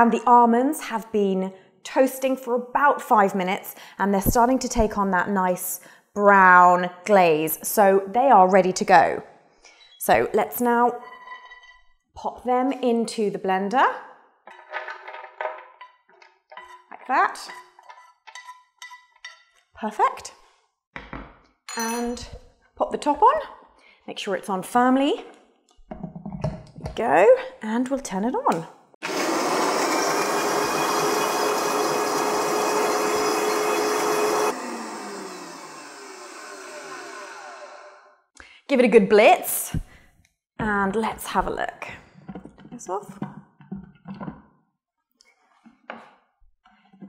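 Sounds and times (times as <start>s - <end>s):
blender motor running: 29.0s - 38.2s.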